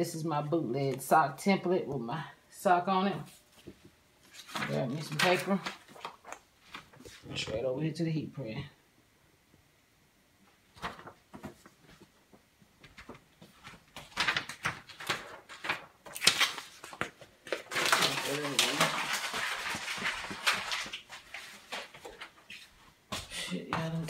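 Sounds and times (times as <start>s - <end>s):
paper rustling: 3.5s - 7.5s, 10.7s - 12.1s, 12.8s - 22.9s.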